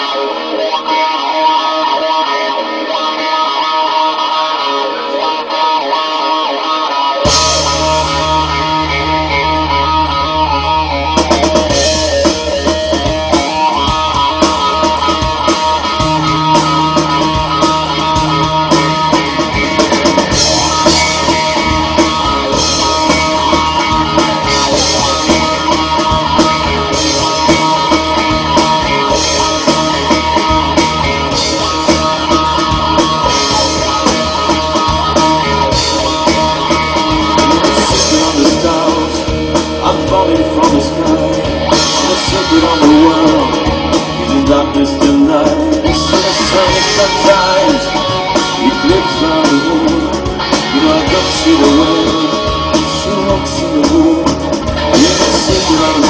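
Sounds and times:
bass guitar: 0:00.0 - 0:56.0
electric guitar: 0:00.0 - 0:56.0
drum kit: 0:07.2 - 0:56.0
lead vocal singing: 0:13.5 - 0:56.0.

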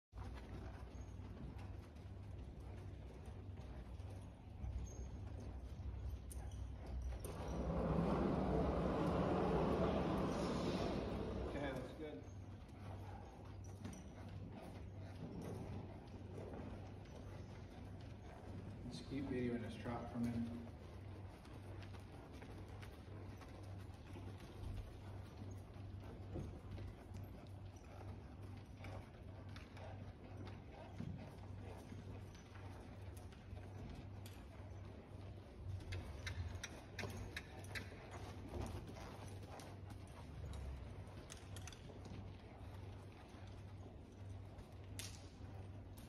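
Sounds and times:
horse hooves walking on dirt: 0:00.0 - 0:46.0.

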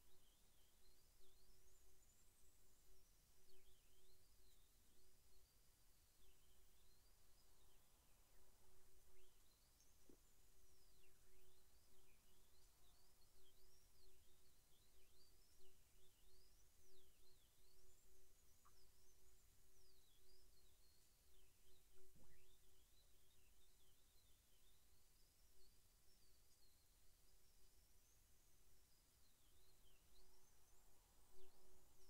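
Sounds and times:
faint distant birdsong: 0:00.0 - 0:32.0.

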